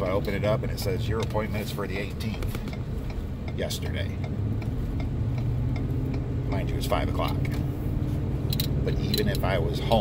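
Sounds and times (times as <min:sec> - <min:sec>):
car cabin road noise: 0:00.0 - 0:10.0.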